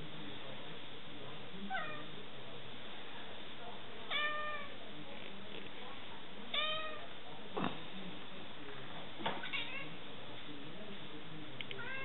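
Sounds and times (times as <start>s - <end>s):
cat meowing: 4.1s - 4.8s, 6.5s - 7.1s, 9.4s - 9.9s, 11.8s - 12.0s.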